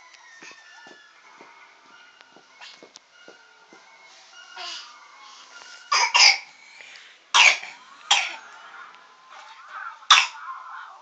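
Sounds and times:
baby coughing: 5.9 - 6.5, 7.4 - 8.4, 10.1 - 10.4.

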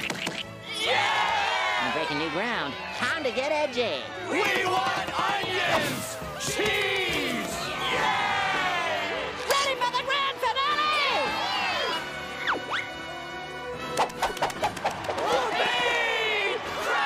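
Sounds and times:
rapid sharp knocks: 4.4 - 5.7.

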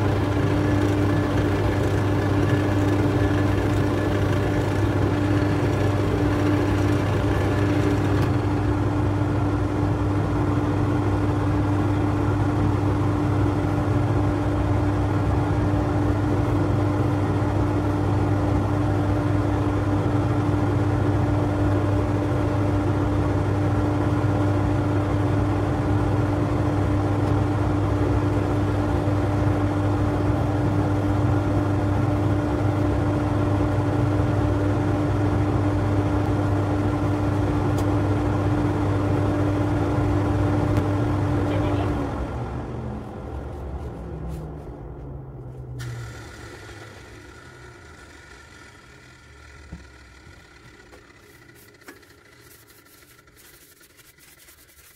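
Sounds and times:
lathe motor hum: 0.0 - 18.7, 45.8 - 54.9.

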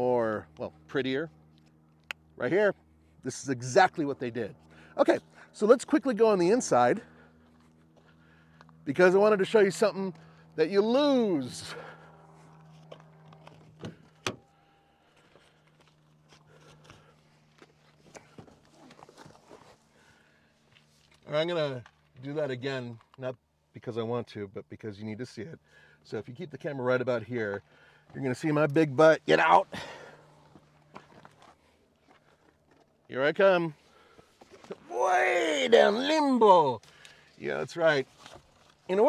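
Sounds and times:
faint clicks and rustles: 12.4 - 14.3.

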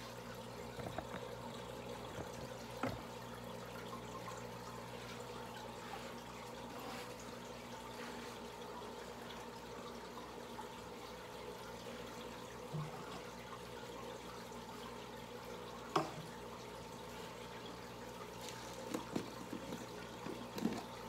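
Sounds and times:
aquarium water bubbling: 0.0 - 21.0
faint steady hum: 0.0 - 21.0.

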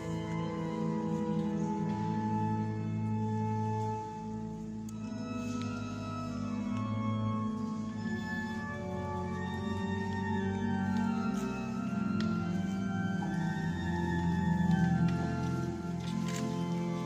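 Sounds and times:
slow organ music: 0.0 - 17.0.

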